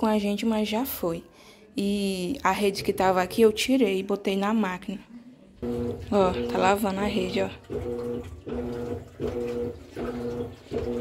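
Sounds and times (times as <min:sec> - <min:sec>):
washing machine motor humming in pulses: 0:05.6 - 0:11.0.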